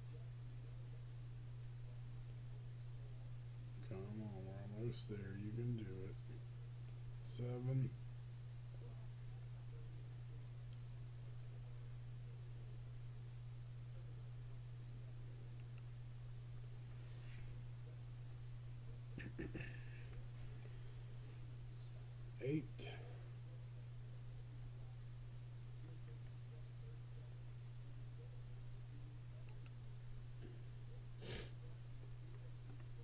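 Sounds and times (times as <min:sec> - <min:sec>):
steady low hum: 0:00.0 - 0:33.0
computer mouse clicks: 0:15.6 - 0:15.9, 0:29.4 - 0:29.8.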